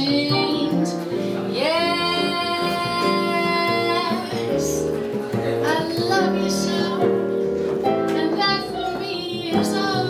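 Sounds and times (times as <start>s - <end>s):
double bass: 0.0s - 10.0s
piano: 0.0s - 10.0s.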